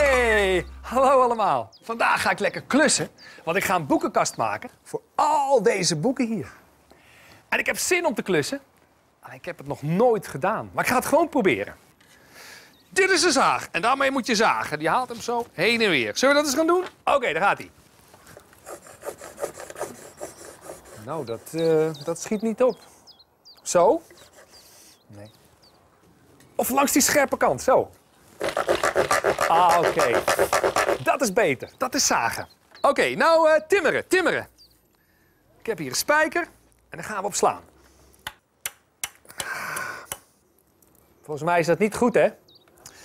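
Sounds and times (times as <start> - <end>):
handsaw scraping on wood: 18.6 - 21.7, 24.0 - 24.7, 28.4 - 31.1.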